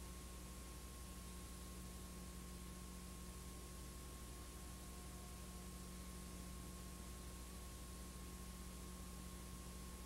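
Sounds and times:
low electrical hum: 0.0s - 10.0s
tape hiss: 0.0s - 10.0s
thin steady high tone: 1.2s - 10.0s.

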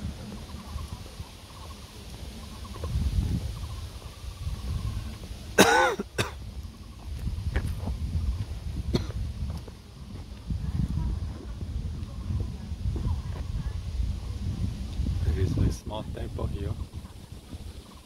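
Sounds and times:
low rumble on microphone: 0.0s - 5.6s, 6.2s - 18.0s
loud short cough: 5.6s - 6.4s, 8.9s - 9.2s.

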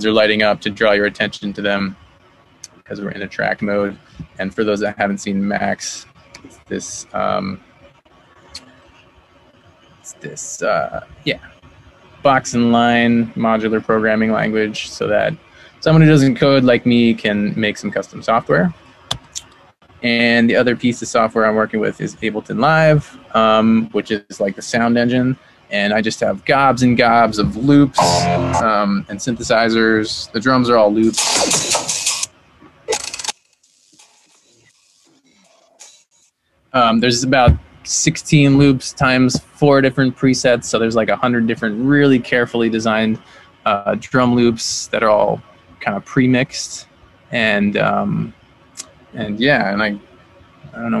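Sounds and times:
microphone background noise: 26.8s - 32.9s, 36.8s - 39.7s.

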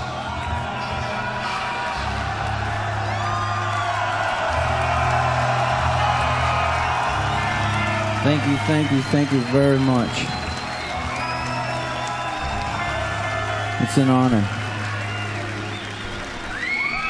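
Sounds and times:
crowd cheering and whistling: 0.0s - 17.0s.

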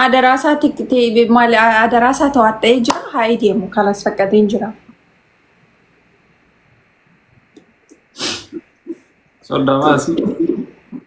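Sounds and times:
faint hiss: 4.8s - 11.0s
sharp burst of breath: 8.2s - 8.6s.

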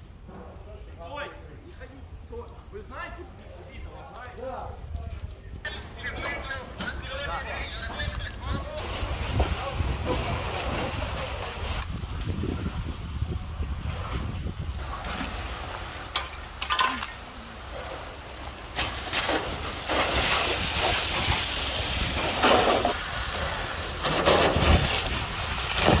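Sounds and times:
fire hissing rush: 0.0s - 26.0s
outdoor rumble: 0.0s - 26.0s.

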